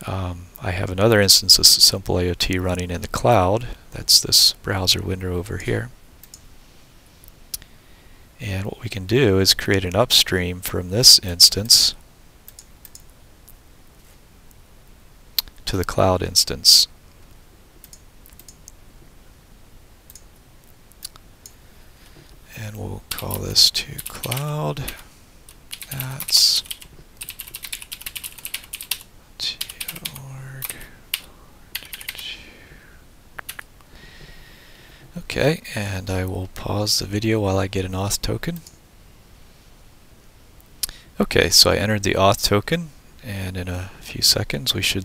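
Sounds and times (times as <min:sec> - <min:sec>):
faint steady hiss: 0:00.0 - 0:45.0
computer keyboard typing: 0:24.0 - 0:32.2.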